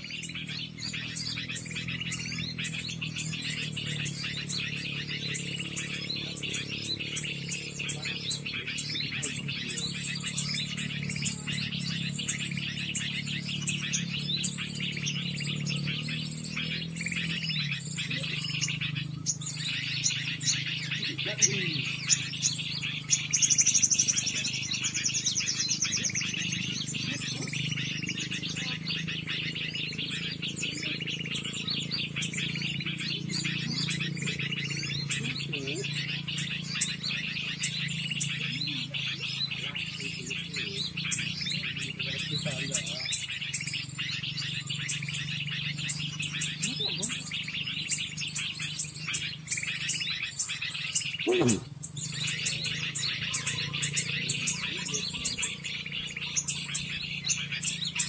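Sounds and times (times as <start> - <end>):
fast high bird trill: 0.0 - 58.0
songbirds chirping and twittering: 0.0 - 58.0.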